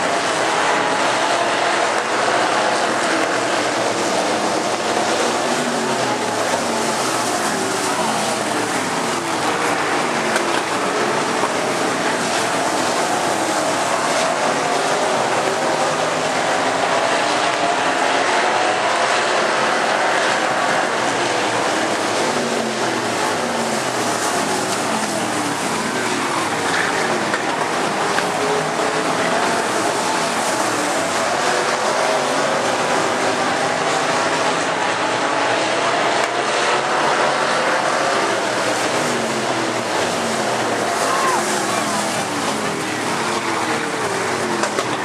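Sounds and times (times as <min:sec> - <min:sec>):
race car engines: 0:00.0 - 0:45.0.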